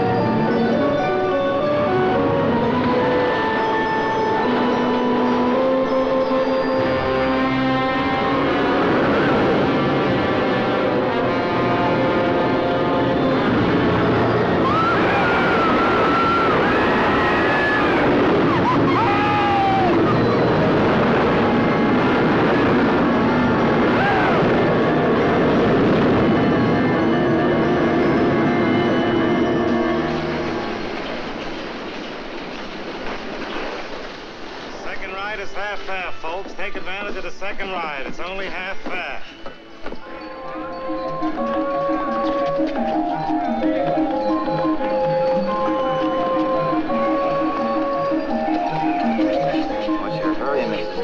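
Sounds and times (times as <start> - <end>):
dramatic orchestral film score: 0.0 - 33.4
wooden roller coaster rumbling: 0.0 - 51.0
wavering high wails: 11.2 - 30.8, 40.0 - 51.0.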